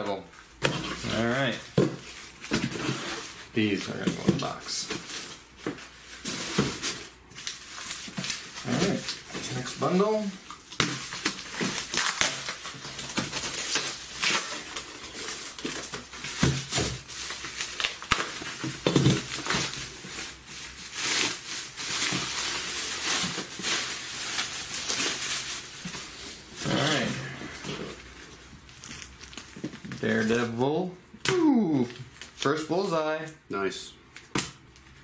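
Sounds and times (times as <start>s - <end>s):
bubble wrap crinkling: 0.2s - 30.6s.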